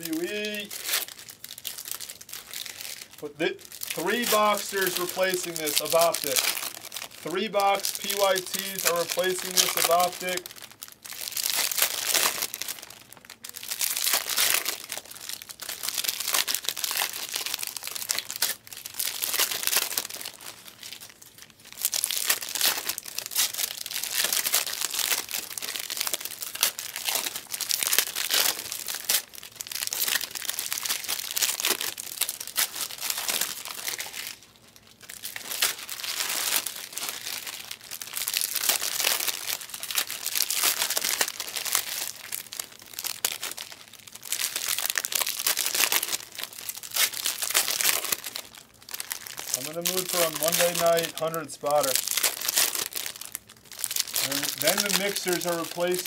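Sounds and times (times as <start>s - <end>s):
foil wrappers tearing and crinkling: 0.0s - 56.0s.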